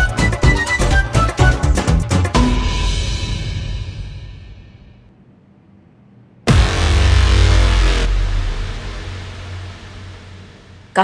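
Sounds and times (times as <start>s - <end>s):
deep low drone: 6.5s - 11.0s
dramatic music sting: 6.5s - 11.0s.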